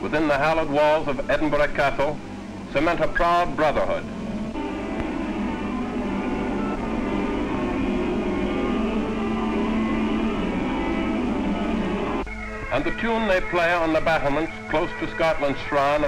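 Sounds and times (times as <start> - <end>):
man narrating: 0.0 - 4.1, 12.7 - 16.0
held low drone note: 4.5 - 15.2
bagpipe tune: 4.6 - 16.0.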